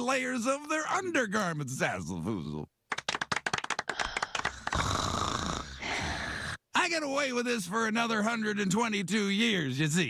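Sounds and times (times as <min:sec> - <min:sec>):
people clapping: 0:02.9 - 0:05.2
women snoring: 0:04.2 - 0:06.6.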